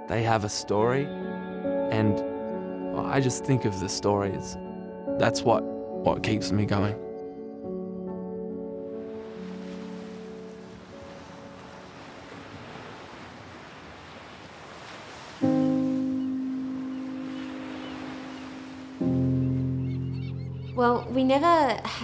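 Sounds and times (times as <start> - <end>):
soundtrack music: 15.4 - 21.9.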